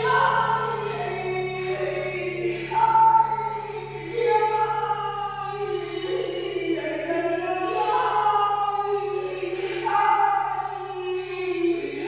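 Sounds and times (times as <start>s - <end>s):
choir-like sung vocals: 0.0s - 12.0s
low steady drone: 0.0s - 12.0s.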